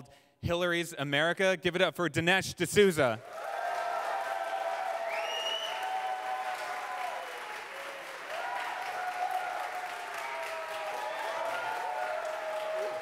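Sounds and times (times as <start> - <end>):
audience applauding: 3.2 - 13.0.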